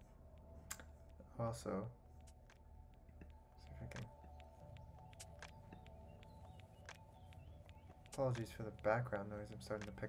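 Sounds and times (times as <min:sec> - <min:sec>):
soft clicks: 0:00.0 - 0:01.3, 0:02.2 - 0:09.1, 0:09.7 - 0:10.0.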